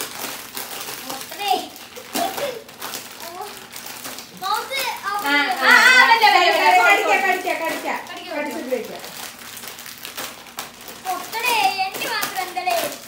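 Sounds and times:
plastic snack packets crinkling: 0:00.0 - 0:13.0
children talking and laughing: 0:01.0 - 0:09.1, 0:11.0 - 0:13.0.

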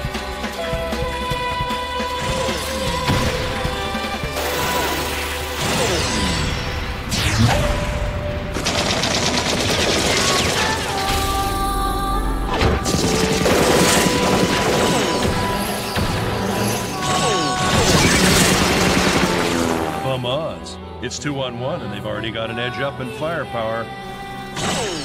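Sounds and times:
music: 0:00.0 - 0:25.0
rapid machine-gun fire: 0:08.5 - 0:11.1, 0:12.8 - 0:16.4, 0:17.1 - 0:19.8.

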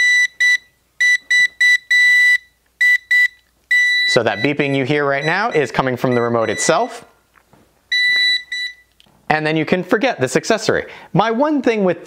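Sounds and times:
remote high beeps: 0:00.0 - 0:07.0, 0:07.9 - 0:08.9.

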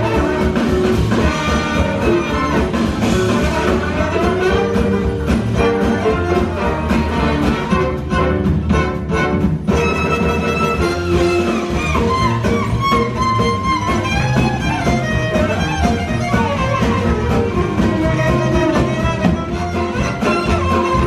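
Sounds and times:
fiddle: 0:00.0 - 0:21.0
jazz band playing: 0:00.0 - 0:21.0.

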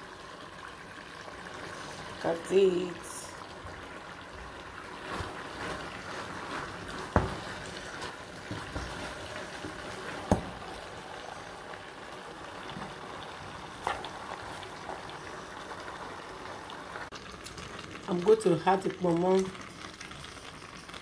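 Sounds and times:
pot simmering and bubbling: 0:00.0 - 0:21.0
sharp knocks on pan: 0:10.3 - 0:10.6.

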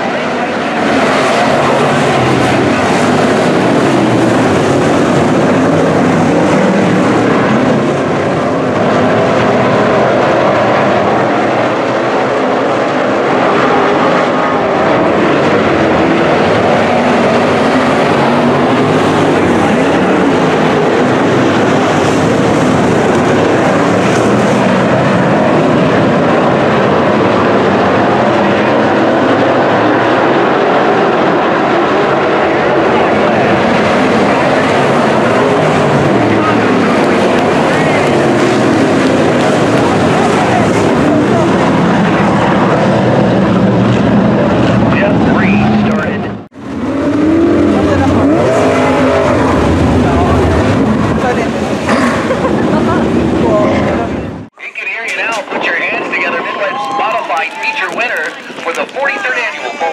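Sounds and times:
race car engines roaring: 0:00.0 - 0:59.9.

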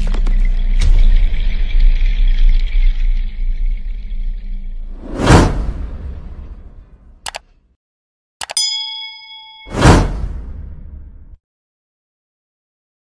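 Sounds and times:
whoosh: 0:04.8 - 0:07.2, 0:09.7 - 0:11.4.

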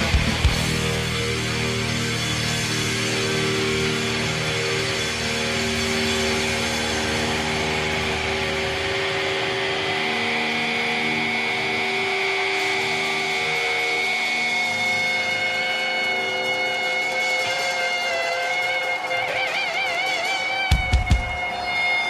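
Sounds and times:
electric guitar feedback drone: 0:00.0 - 0:22.0.

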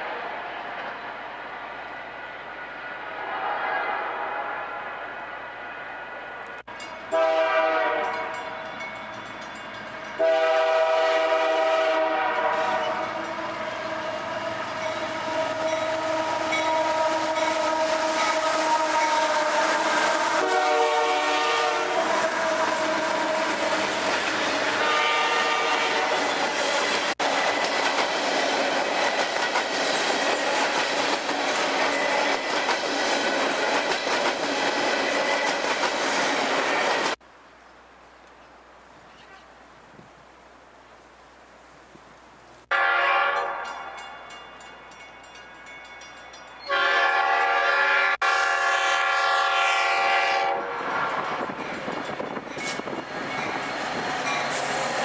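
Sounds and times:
train air horn blasts: 0:03.2 - 0:05.0, 0:07.1 - 0:08.6, 0:10.1 - 0:26.4, 0:42.7 - 0:44.0, 0:46.7 - 0:50.8
train wheel clatter: 0:26.3 - 0:37.2, 0:50.8 - 0:55.0.

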